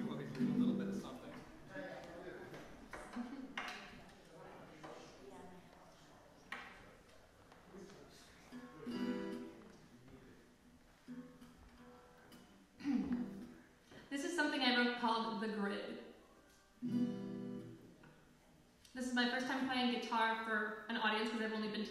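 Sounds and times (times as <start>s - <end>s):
acoustic guitar plucking and strumming: 0.0s - 1.1s, 8.5s - 9.6s, 11.1s - 13.6s, 16.8s - 17.8s.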